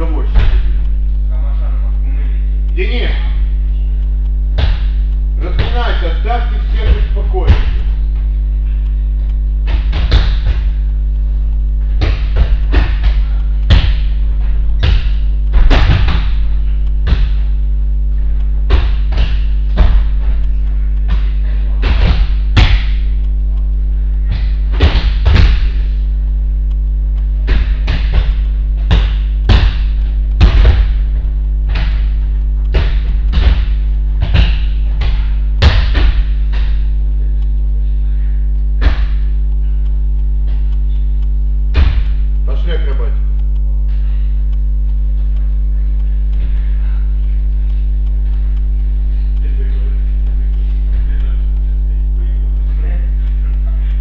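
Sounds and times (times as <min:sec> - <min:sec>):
low electrical hum: 0:00.0 - 0:54.0
bodies thudding on mats: 0:09.6 - 0:10.9, 0:11.8 - 0:20.4, 0:21.1 - 0:23.2, 0:24.2 - 0:26.0, 0:27.4 - 0:36.9, 0:38.8 - 0:39.3, 0:41.7 - 0:42.2.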